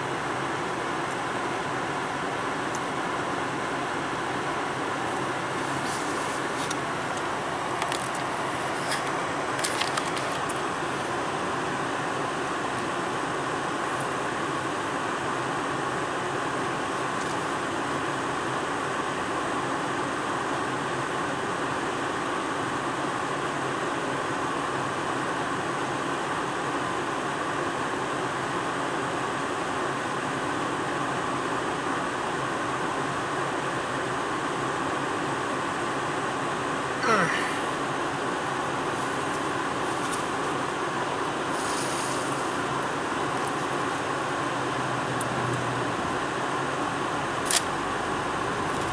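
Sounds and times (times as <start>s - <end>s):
climate fan blowing: 0.0s - 48.9s
car engine idling: 34.5s - 48.9s.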